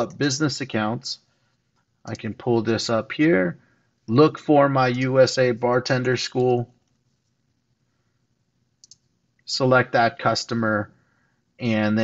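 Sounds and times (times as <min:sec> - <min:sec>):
faint clicks: 0:08.8 - 0:09.5.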